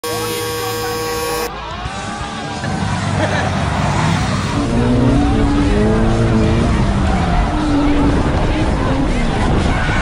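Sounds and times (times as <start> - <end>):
car engine revving: 0.0 - 1.5, 3.9 - 9.8
steady humming tones: 0.0 - 1.5.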